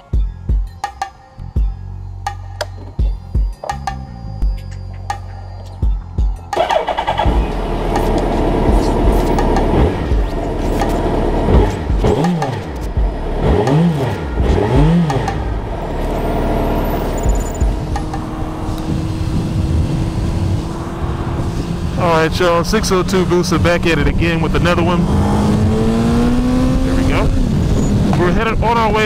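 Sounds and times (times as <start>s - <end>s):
background music: 0.0s - 29.0s
motorcycle engine starting and revving: 6.5s - 29.0s.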